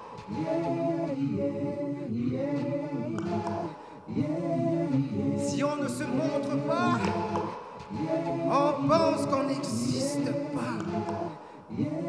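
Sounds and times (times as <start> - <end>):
layered male a cappella voices: 0.0 - 12.0.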